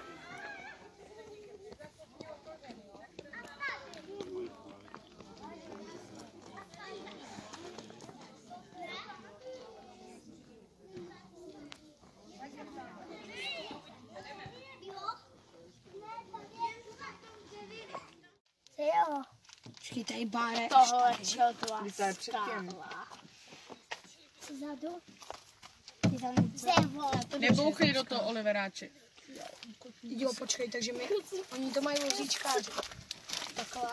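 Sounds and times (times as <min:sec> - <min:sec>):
children talking and calling out: 0:00.0 - 0:28.3, 0:29.0 - 0:33.9.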